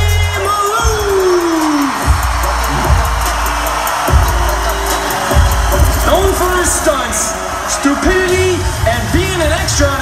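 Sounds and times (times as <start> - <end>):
crowd noise: 0.0 - 10.0
loud concert music with bass and drums: 0.0 - 10.0.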